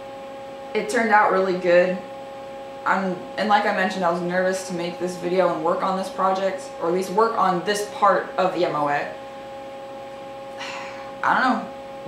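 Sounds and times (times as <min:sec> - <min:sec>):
electrical hum with high tones: 0:00.0 - 0:12.0.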